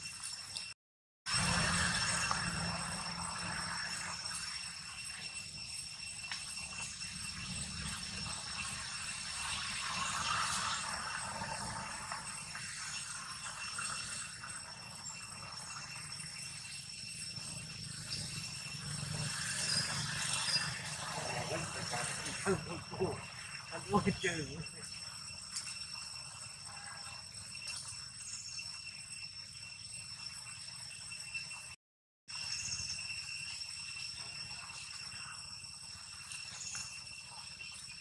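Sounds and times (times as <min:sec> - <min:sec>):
high-pitched insect drone: 0:00.0 - 0:38.0.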